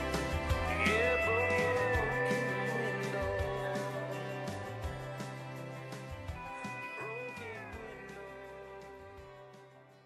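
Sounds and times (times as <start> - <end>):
country song: 0.0 - 10.0.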